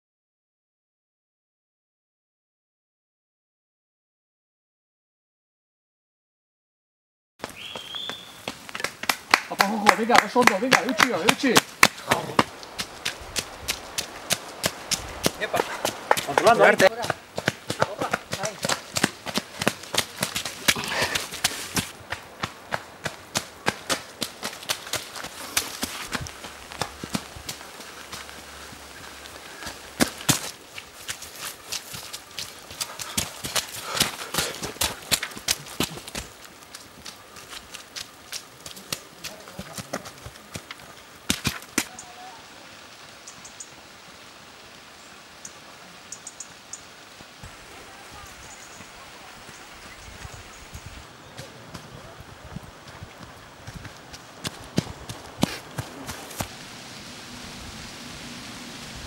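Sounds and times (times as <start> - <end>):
running footsteps on dirt: 7.4 - 41.9, 47.1 - 56.6
light rain hissing: 7.4 - 59.0.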